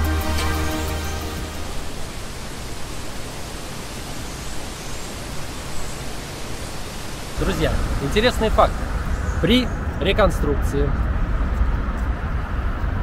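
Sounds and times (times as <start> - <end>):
music: 0.0 - 2.0
steady rushing hiss: 0.0 - 12.6.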